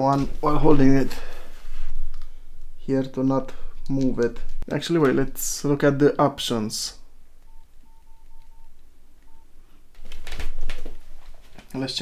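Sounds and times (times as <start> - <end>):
rustling noise: 0.0 - 5.8, 9.5 - 12.0
phone keypad beeps: 7.5 - 9.5.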